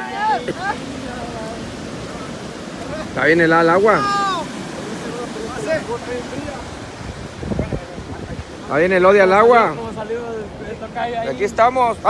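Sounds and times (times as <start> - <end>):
ocean surf on beach: 0.0 - 12.0.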